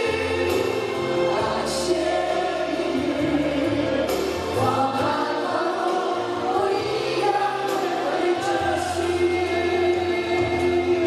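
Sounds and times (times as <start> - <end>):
group singing in chorus: 0.0 - 11.0.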